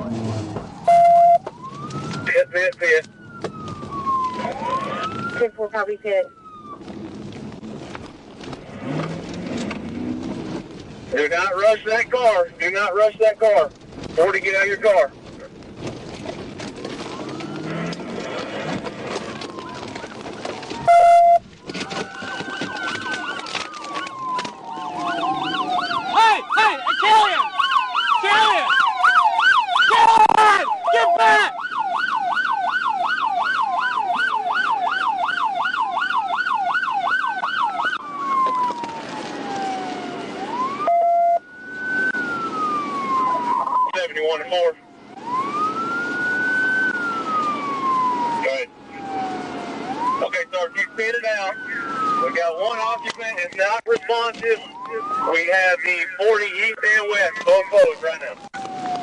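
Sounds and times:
police car siren: 0:00.0 - 0:07.9, 0:16.1 - 0:59.0.

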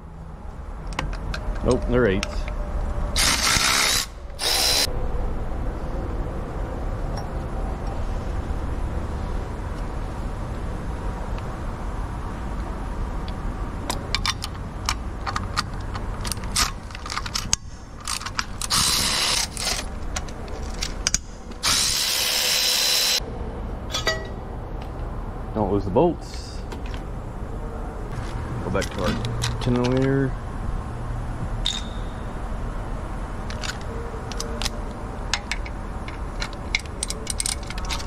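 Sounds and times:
electric ratchet running: 0:03.2 - 0:04.9, 0:18.6 - 0:19.8, 0:21.6 - 0:23.2
sharp ratcheting clicks: 0:03.2 - 0:04.9.

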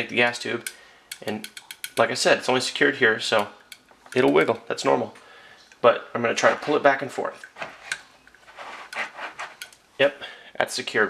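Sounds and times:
metallic rattling and scraping: 0:07.6 - 0:09.8.

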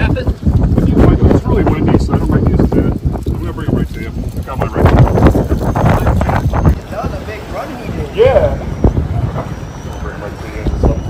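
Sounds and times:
low rumbling: 0:00.0 - 0:11.0
people talking: 0:00.0 - 0:11.0
wind buffeting microphone: 0:00.0 - 0:11.0.

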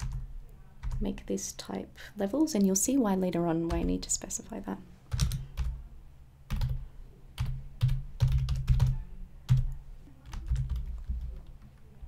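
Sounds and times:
typing on computer keyboard: 0:00.0 - 0:01.0, 0:05.1 - 0:05.8, 0:06.5 - 0:06.8, 0:07.4 - 0:11.8.

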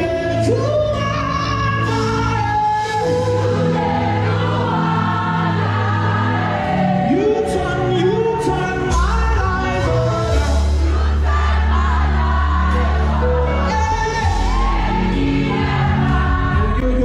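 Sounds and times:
gospel choir singing with band: 0:00.0 - 0:17.0.

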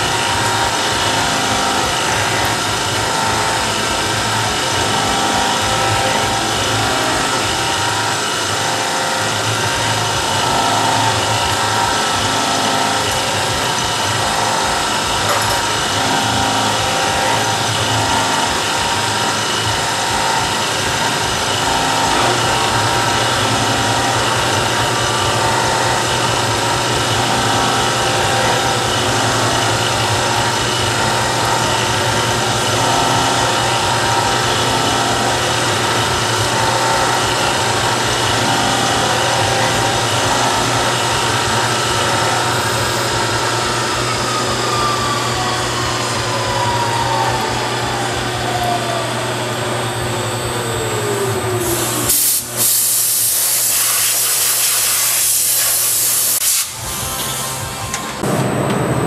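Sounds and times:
spindle whine: 0:00.0 - 0:52.7, 0:56.7 - 0:59.0
milling machine cutting: 0:00.0 - 0:59.0
tone gliding down in pitch: 0:38.3 - 0:51.7.

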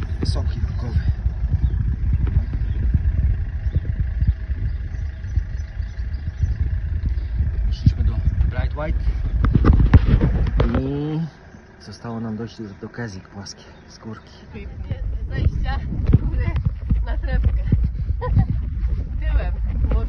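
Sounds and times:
wind buffeting microphone: 0:00.0 - 0:11.7, 0:14.4 - 0:20.0.

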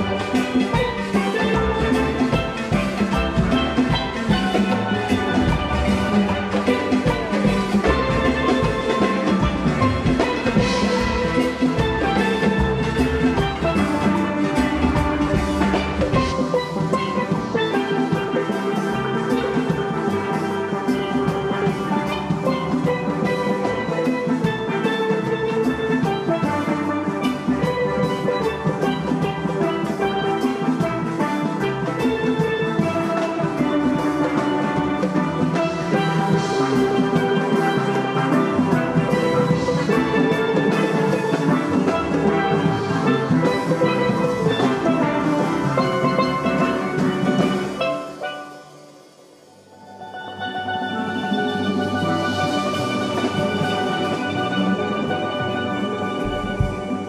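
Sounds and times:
drum kit with cymbals: 0:00.0 - 0:57.0
steel pans playing: 0:00.0 - 0:57.0.

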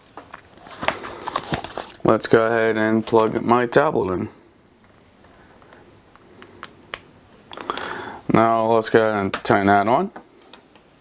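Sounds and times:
soft rustling: 0:00.0 - 0:02.2.

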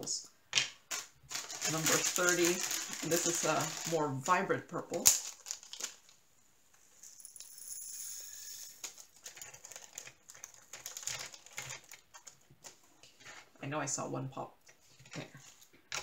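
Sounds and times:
small plastic gems rattling: 0:00.9 - 0:04.1, 0:07.1 - 0:11.9
plastic bag crinkling: 0:00.9 - 0:06.2, 0:08.7 - 0:12.8.

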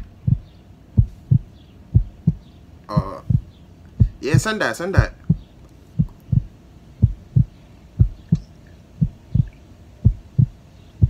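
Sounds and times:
heartbeat double thump: 0:00.0 - 0:10.6.

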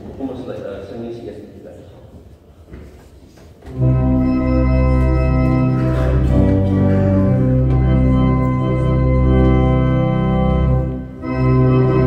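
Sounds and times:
church organ playing a hymn: 0:03.7 - 0:12.0.

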